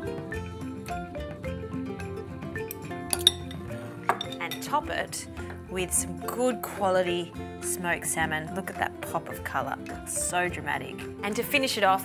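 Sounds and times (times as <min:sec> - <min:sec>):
background music: 0:00.0 - 0:12.0
metal fork clinking against dishes: 0:02.7 - 0:04.7.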